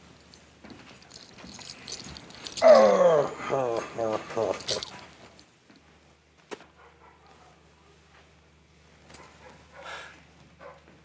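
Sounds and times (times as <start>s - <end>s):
light metallic jingling: 0.0s - 3.2s, 3.8s - 5.5s.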